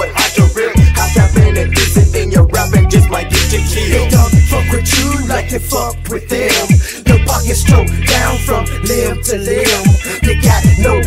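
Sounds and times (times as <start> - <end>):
heavy bass: 0.0 - 11.0
rapping over a beat: 0.0 - 11.0.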